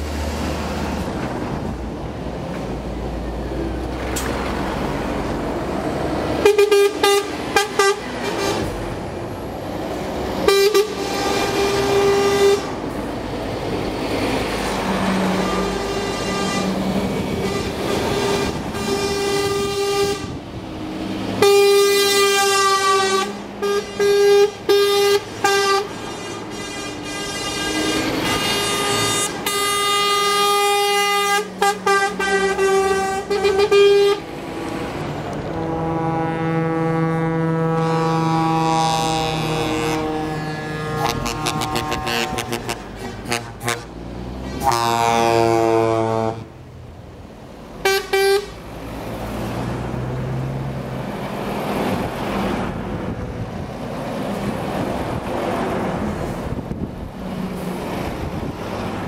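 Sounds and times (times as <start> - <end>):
truck engines and tyres: 0.0 - 59.0
deeper horn: 6.0 - 8.9, 10.4 - 12.9, 14.6 - 20.5, 21.4 - 34.4, 35.3 - 46.5, 47.8 - 48.6
truck horns blasting and tooting: 6.2 - 9.0, 10.3 - 13.0, 14.3 - 20.5, 21.3 - 34.4, 35.3 - 46.6, 47.8 - 49.5.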